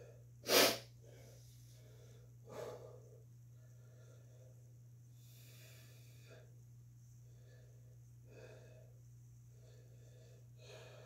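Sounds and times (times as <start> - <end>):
heavy breathing: 0.0 - 6.6, 7.2 - 11.0
sharp burst of breath: 0.4 - 0.9.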